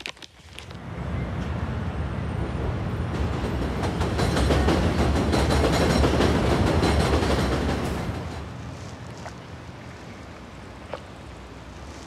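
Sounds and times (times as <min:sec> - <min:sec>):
train wheels clattering: 0:03.1 - 0:08.5.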